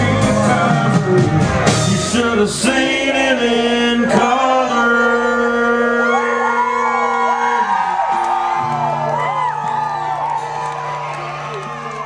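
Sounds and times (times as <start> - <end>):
live band holding a chord: 0.0 - 12.0
audience whooping and cheering: 5.9 - 12.0.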